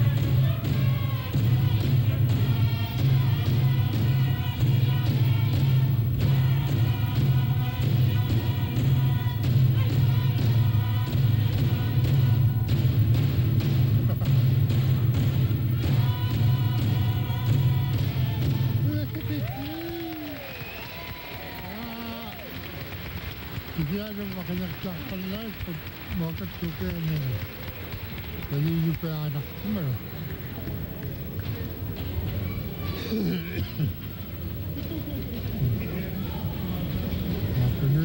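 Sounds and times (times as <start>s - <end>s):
group singing: 0.0s - 13.3s, 15.8s - 18.8s
frame drums beating: 0.0s - 32.4s
quiet voices: 15.7s - 38.0s.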